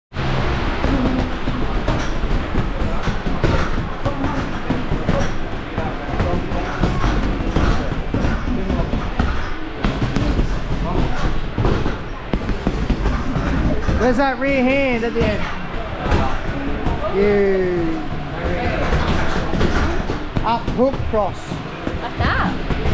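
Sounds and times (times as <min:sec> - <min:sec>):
gloves punching heavy bags: 0:00.8 - 0:22.9
voices: 0:00.8 - 0:22.9.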